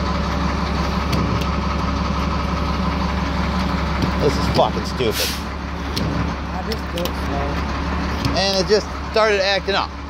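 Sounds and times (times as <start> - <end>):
fuel pump mechanical hum: 0.0 - 10.0.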